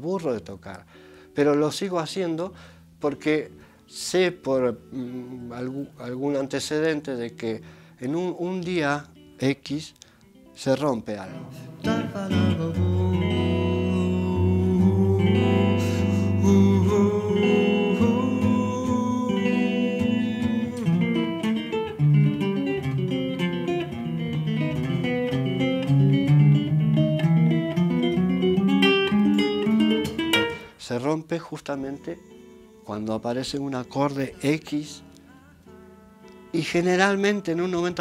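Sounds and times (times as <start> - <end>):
electric guitar playing chords: 11.2 - 30.8.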